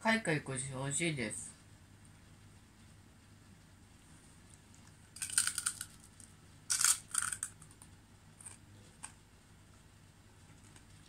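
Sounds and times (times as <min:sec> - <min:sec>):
crunching of crisp cracker: 0:04.4 - 0:09.2.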